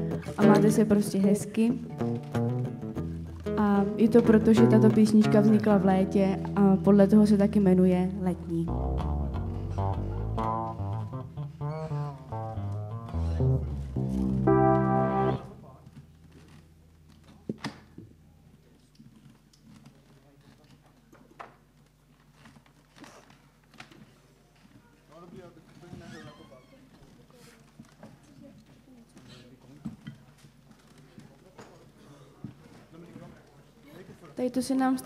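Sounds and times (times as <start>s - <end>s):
guitar and bass playing: 0.0s - 15.7s
person making announcements: 0.4s - 1.8s, 3.6s - 8.7s.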